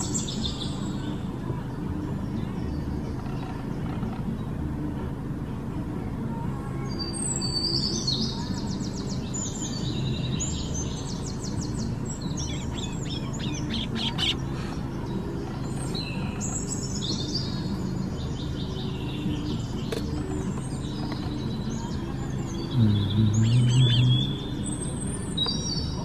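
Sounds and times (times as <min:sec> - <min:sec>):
birds chirping and twittering: 0:00.0 - 0:26.0
low steady hum: 0:00.0 - 0:26.0.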